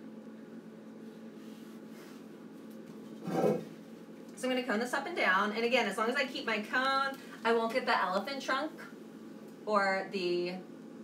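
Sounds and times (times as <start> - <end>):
pottery wheel motor hum: 0.0 - 9.1.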